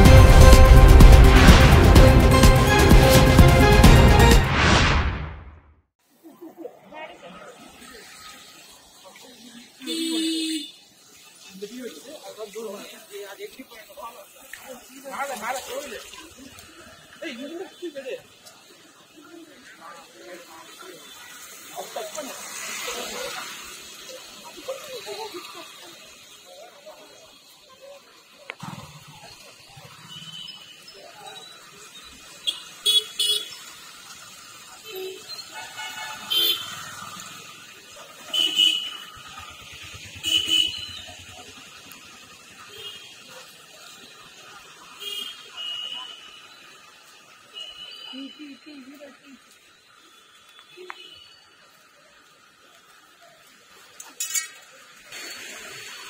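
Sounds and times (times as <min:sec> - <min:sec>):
people talking: 0:06.2 - 0:10.7, 0:11.4 - 0:30.2, 0:48.0 - 0:49.6.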